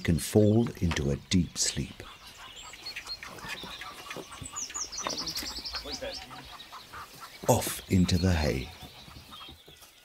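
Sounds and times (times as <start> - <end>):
small bird singing: 0.0 - 10.0.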